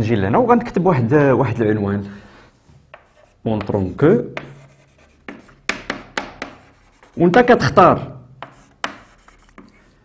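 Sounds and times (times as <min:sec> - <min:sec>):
chalk tapping and scratching: 0:02.9 - 0:07.8, 0:08.4 - 0:10.0.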